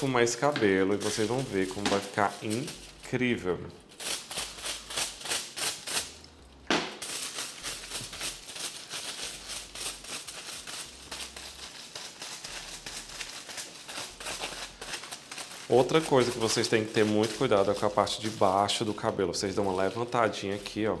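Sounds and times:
brush strokes on foil: 0.0 - 21.0.

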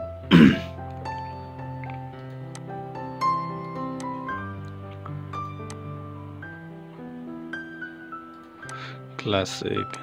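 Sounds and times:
soft background music: 0.0 - 10.0
person coughing: 0.3 - 0.7.

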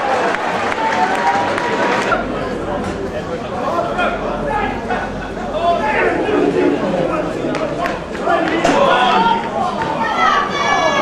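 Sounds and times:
players and spectators shouting: 0.0 - 11.0
steady high-pitched tone: 2.2 - 9.6.

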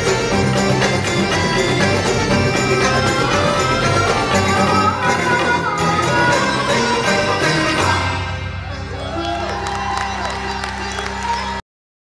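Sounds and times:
dance music: 0.0 - 11.6
audience cheering: 8.6 - 11.6
whoops: 8.6 - 11.6.

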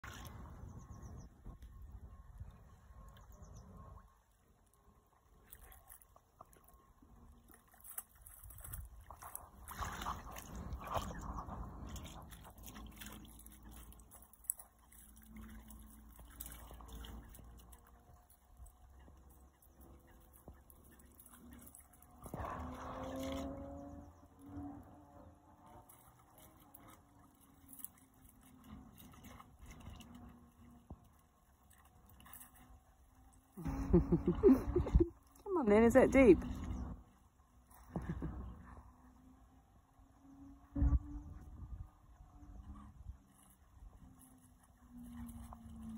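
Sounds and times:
water sloshing: 0.0 - 39.4, 42.3 - 45.9
dog splashing in water: 5.4 - 24.7, 25.6 - 32.7.

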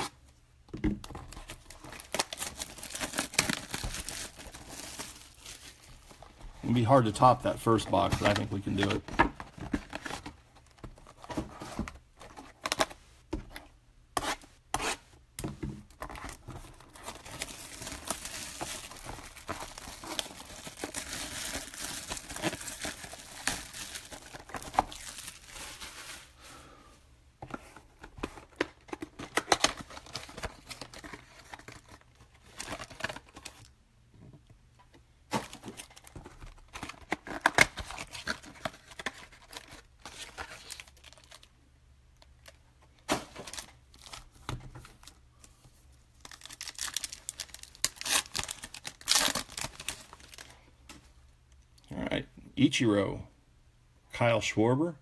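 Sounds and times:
packaging tearing and crinkling: 1.2 - 5.9, 16.0 - 26.3, 28.4 - 33.7, 35.3 - 41.5, 46.2 - 50.5.

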